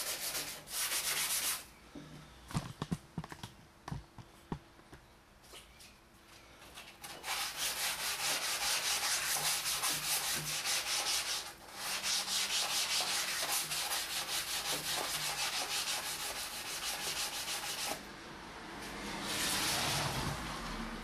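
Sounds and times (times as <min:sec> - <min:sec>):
sandpaper rubbing on wood: 0:00.0 - 0:01.7, 0:07.0 - 0:18.0, 0:19.2 - 0:20.2.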